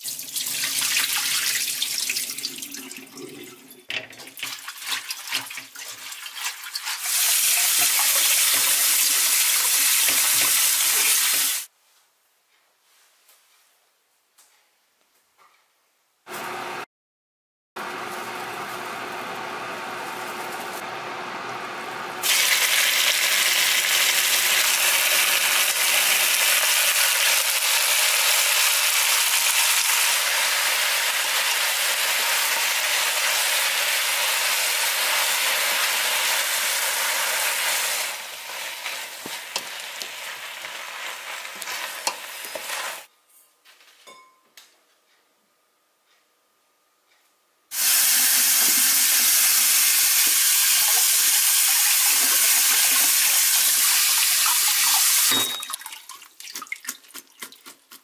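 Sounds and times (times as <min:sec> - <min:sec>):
tap water running: 0:00.0 - 0:11.7, 0:22.2 - 0:43.1, 0:47.7 - 0:57.8
seaweed sizzling in a pot: 0:04.6 - 0:11.7, 0:17.8 - 0:21.0, 0:22.2 - 0:43.1, 0:47.7 - 0:55.3.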